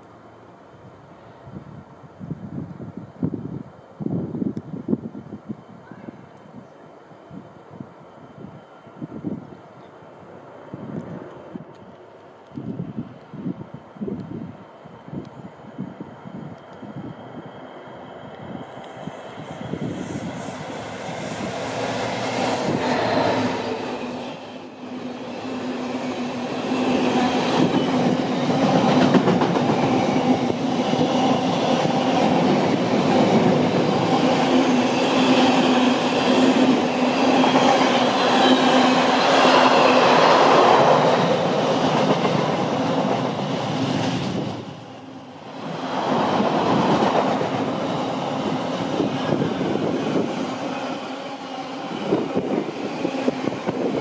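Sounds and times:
diesel locomotive passing: 6.8s - 54.0s
train wheels clattering on rail: 25.6s - 44.6s, 45.6s - 50.8s.

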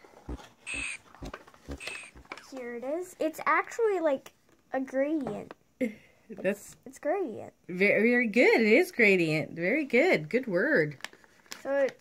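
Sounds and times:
packaging crinkling rustles: 10.9s - 12.0s.

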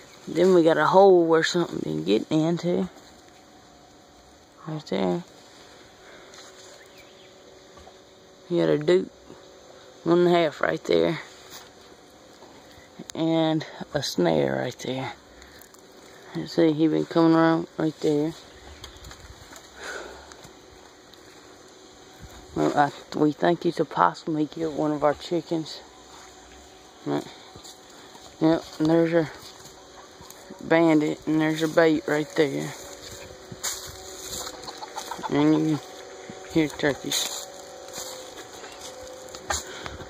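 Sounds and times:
faint outdoor hiss: 0.0s - 40.0s
turkey low drumming rumble: 25.6s - 40.0s
turkey spit: 34.0s - 36.7s.

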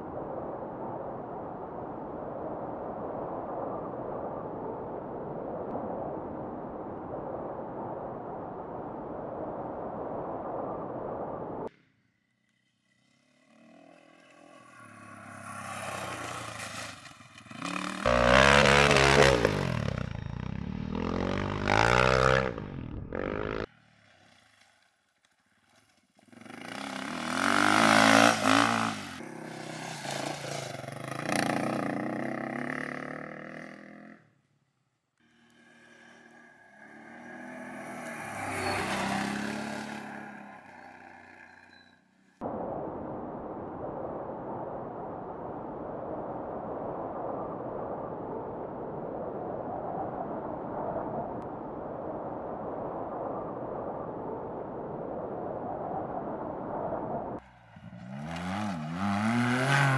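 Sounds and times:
motorcycles revving past: 12.8s - 24.8s, 26.2s - 34.3s, 35.4s - 41.9s, 57.5s - 59.9s.

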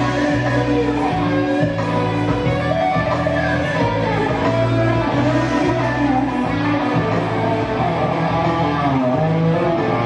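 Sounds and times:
electric guitar bending notes: 0.0s - 10.0s
steady bass line: 0.0s - 10.0s.

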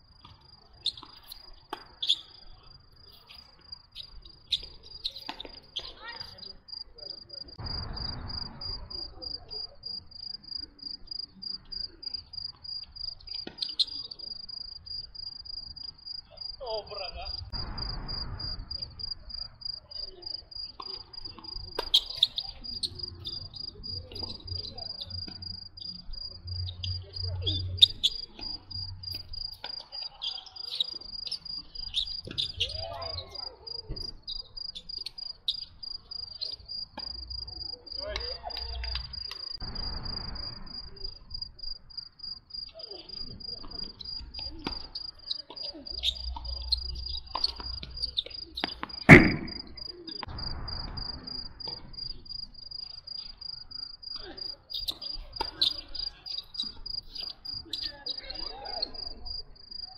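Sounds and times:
tennis balls struck by rackets: 0.2s - 2.4s, 4.3s - 6.0s, 20.7s - 23.4s, 43.7s - 50.4s, 54.9s - 55.9s
cricket chirping trill: 0.5s - 59.9s.

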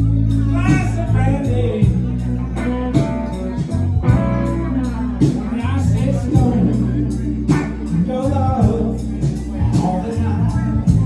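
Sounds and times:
bass line: 0.0s - 11.0s
electric guitar: 0.0s - 11.0s
steady drum beat: 0.1s - 11.0s.

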